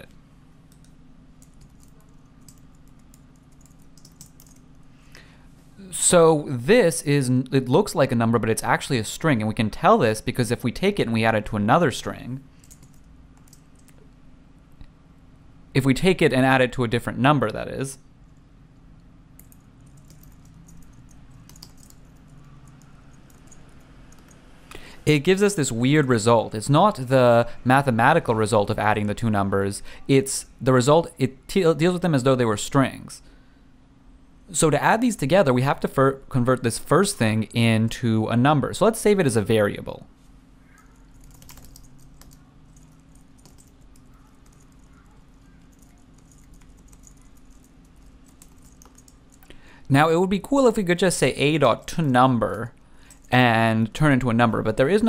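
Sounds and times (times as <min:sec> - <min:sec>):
faint steady low hum: 0:00.0 - 0:55.0
computer keyboard typing: 0:00.7 - 0:04.7, 0:12.6 - 0:14.0, 0:19.4 - 0:24.4, 0:40.7 - 0:49.5, 0:52.0 - 0:53.4.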